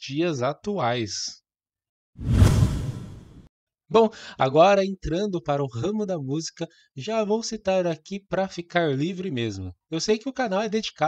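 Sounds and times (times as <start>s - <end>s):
whoosh transition effect: 2.2s - 3.5s.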